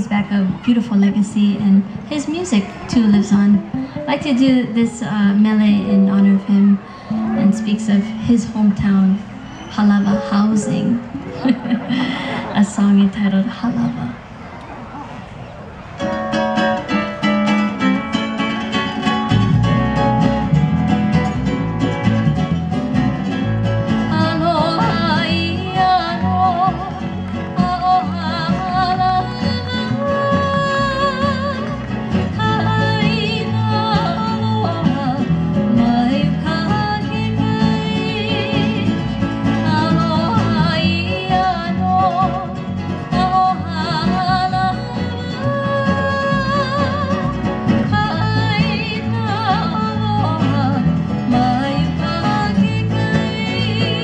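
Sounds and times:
ukuleles and guitar strumming: 0.0s - 12.8s, 15.8s - 54.0s
low bass line: 18.3s - 54.0s
woman singing with vibrato: 24.0s - 54.0s.

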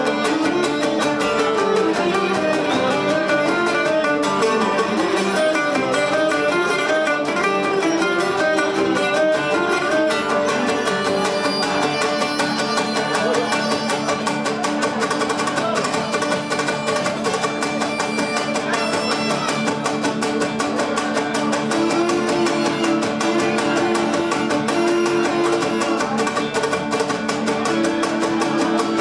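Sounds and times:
bowed lyra melody: 0.0s - 15.0s, 15.6s - 29.0s
lutes strumming: 0.0s - 29.0s.

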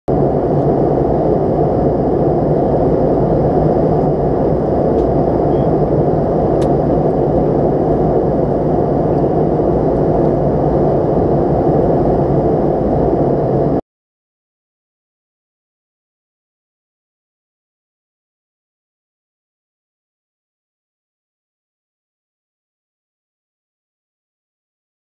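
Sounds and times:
airliner cabin noise: 0.1s - 13.8s.

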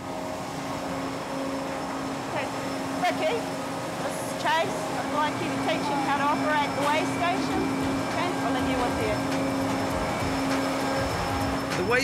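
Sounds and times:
factory machinery hum: 0.0s - 12.0s.

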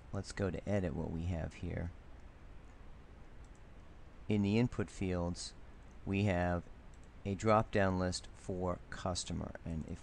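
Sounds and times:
low steady hiss: 0.0s - 10.0s
computer mouse clicks: 2.2s - 3.9s, 6.9s - 7.2s.

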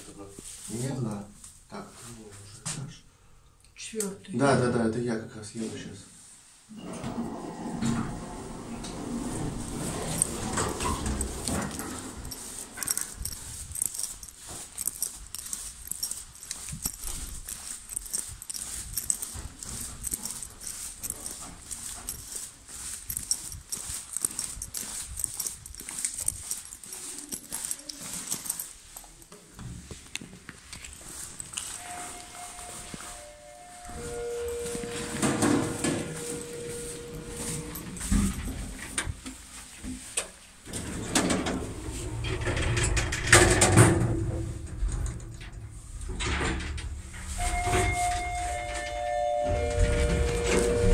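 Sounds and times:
lift car moving: 6.7s - 13.0s, 31.8s - 39.0s, 40.7s - 50.9s
lift doors opening and closing: 6.7s - 13.3s, 31.7s - 39.2s, 40.6s - 50.9s
handling noise: 8.1s - 50.9s
footsteps: 8.2s - 40.8s, 47.0s - 50.9s
lift arrival electronic tones: 31.7s - 38.1s, 47.3s - 50.9s.

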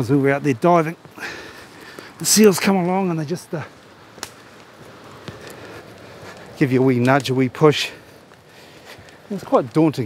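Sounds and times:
leaves rustling: 0.0s - 10.0s
low steady hiss: 0.0s - 10.0s.

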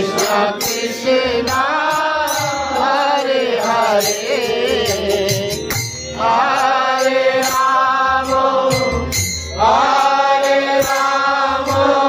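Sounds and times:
sharp percussion strikes: 0.0s - 12.0s.

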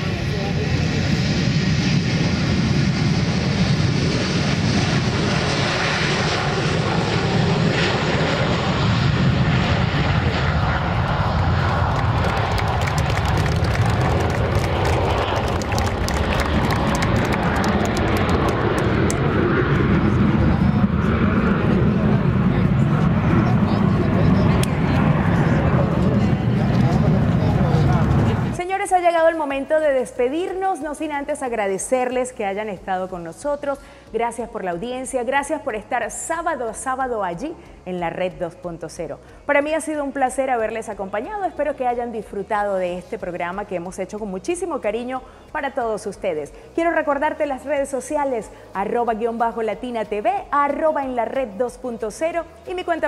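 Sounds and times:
airliner engine noise: 0.0s - 34.7s.

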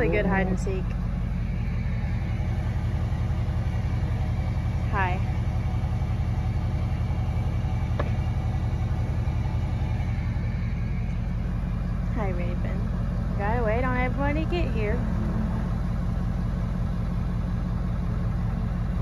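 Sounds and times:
truck engine idling: 0.0s - 19.0s.

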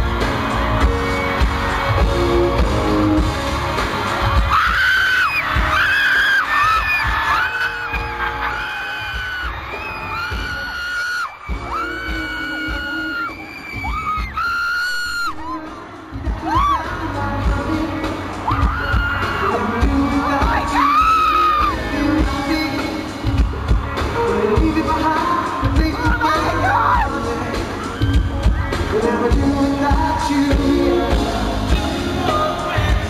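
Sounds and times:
pop music with steady beat: 0.0s - 33.0s.

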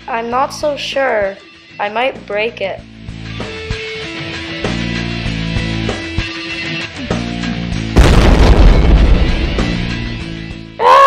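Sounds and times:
rock music with guitar: 2.8s - 10.8s
loud rumbling boom: 8.0s - 10.4s.

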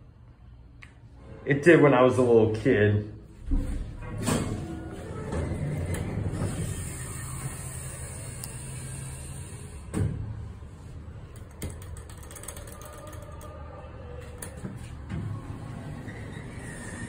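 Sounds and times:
elevator car creaking: 3.5s - 9.6s, 11.4s - 17.0s
elevator car low hum: 3.9s - 17.0s.

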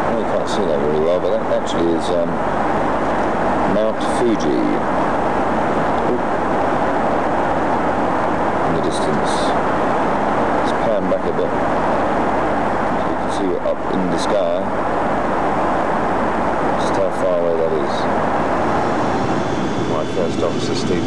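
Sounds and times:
airliner engines and airflow rushing: 0.0s - 21.0s
faint voices in cabin: 19.9s - 21.0s.

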